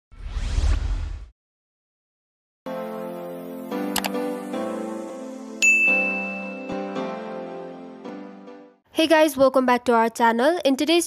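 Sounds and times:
whoosh with deep rumble: 0.1s - 1.3s.

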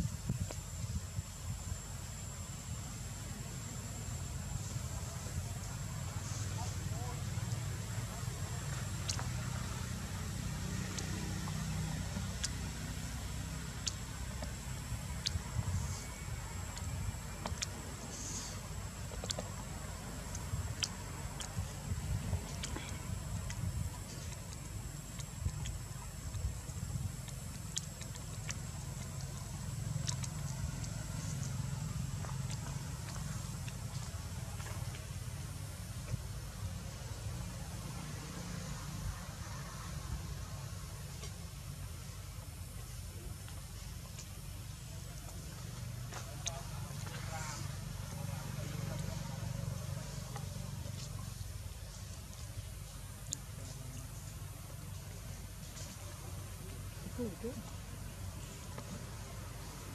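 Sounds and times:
low outdoor rumble: 0.0s - 59.9s
faint voices: 2.4s - 59.9s.

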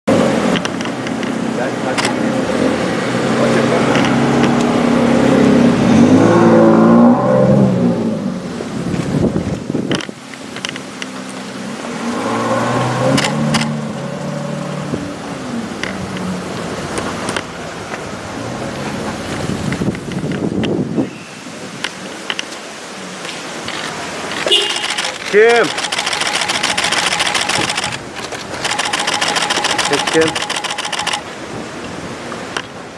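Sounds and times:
camera shutters clicking: 2.0s - 2.2s, 23.8s - 31.2s.

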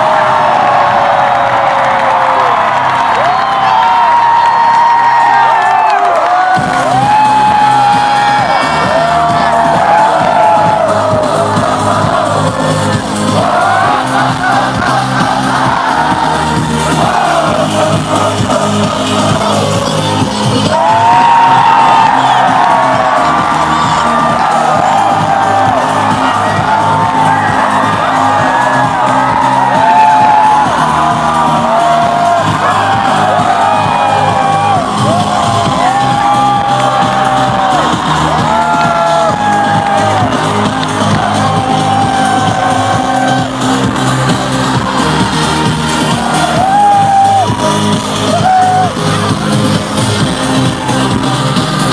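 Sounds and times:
crowd shouting and whooping: 0.0s - 51.9s
pop dance music: 0.0s - 51.9s
high voices singing: 9.9s - 21.2s.

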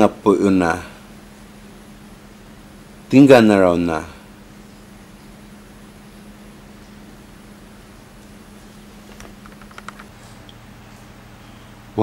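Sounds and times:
steady low room hum: 0.0s - 12.0s.

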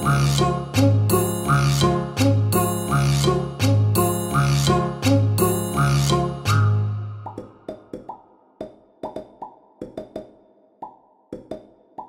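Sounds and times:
pitched cartoon plops: 7.2s - 12.0s.

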